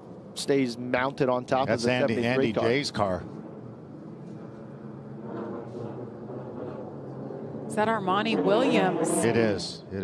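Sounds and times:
faint low engine hum: 0.0s - 10.0s
race track ambience: 0.0s - 10.0s.

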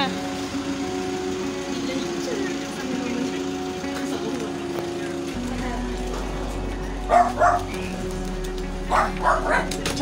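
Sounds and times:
background music: 0.0s - 10.0s
dog barking: 7.1s - 7.8s, 8.9s - 9.8s.

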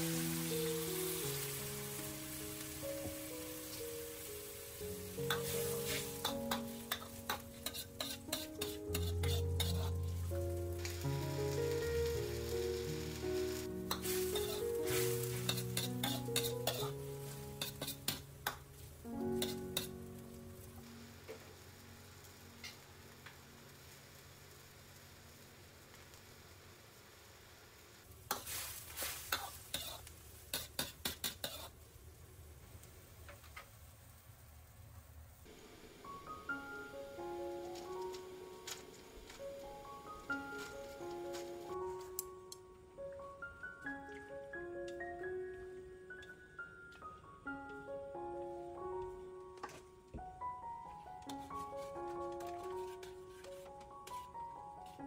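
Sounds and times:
faint hiss of simmering liquid: 0.0s - 43.4s
metal ladle scraping a wok: 5.2s - 10.0s, 13.9s - 17.0s, 17.6s - 18.3s.

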